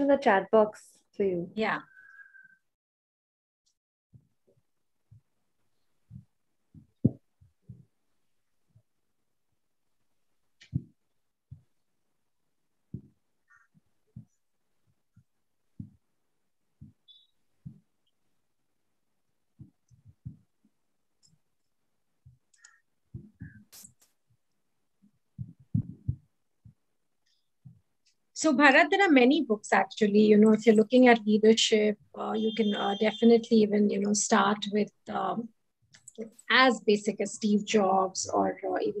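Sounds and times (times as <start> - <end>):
soft low thumps: 12.9 - 16.1, 19.6 - 20.5, 25.4 - 26.8.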